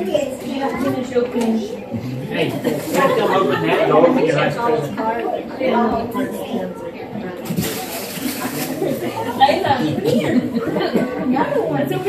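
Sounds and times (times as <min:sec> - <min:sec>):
guests chatting: 0:00.0 - 0:12.0
wrapping paper rustling and tearing: 0:07.5 - 0:09.2.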